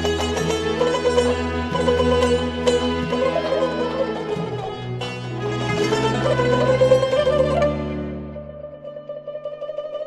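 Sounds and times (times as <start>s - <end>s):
plucked lute tremolo melody: 0.0s - 10.0s.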